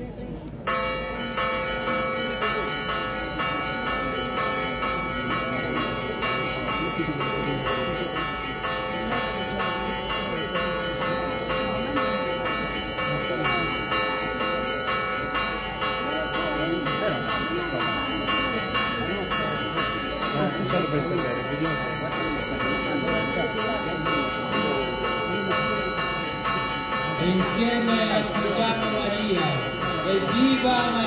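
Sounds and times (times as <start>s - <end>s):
church bells ringing a peal: 0.0s - 31.0s
crowd murmur: 0.0s - 31.0s.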